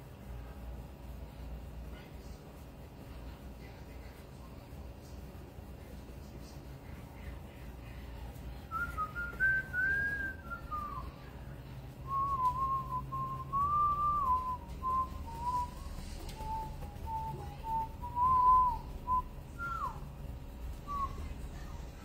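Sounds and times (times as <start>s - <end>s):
person whistling a slow tune: 8.7s - 11.2s, 12.0s - 20.0s, 20.8s - 21.4s.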